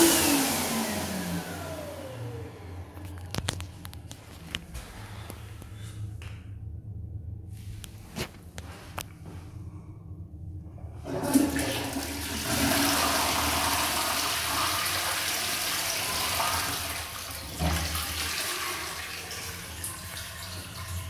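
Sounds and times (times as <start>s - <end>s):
toilet flushing: 0.0s - 2.7s, 10.9s - 21.0s.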